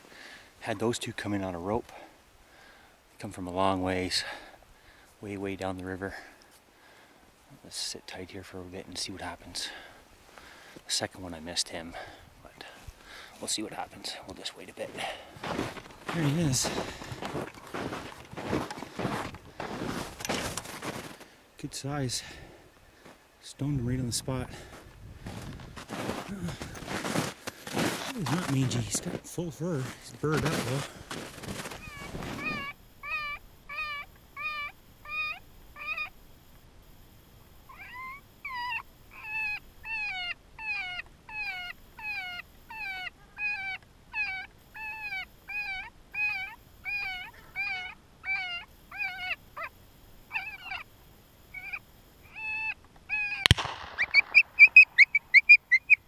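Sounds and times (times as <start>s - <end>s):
footsteps in snow: 12.6s - 21.4s, 23.0s - 32.7s
electronic animal cry call: 31.6s - 36.2s, 37.7s - 50.9s, 51.5s - 53.5s.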